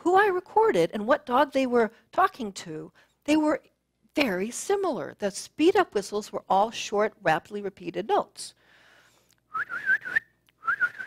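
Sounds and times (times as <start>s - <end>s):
person whistling short repeated notes: 9.5s - 11.0s.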